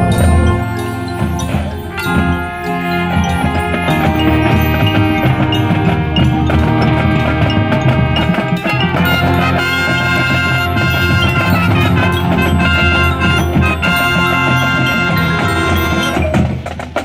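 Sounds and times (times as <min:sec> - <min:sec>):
marching band playing: 0:00.0 - 0:17.0.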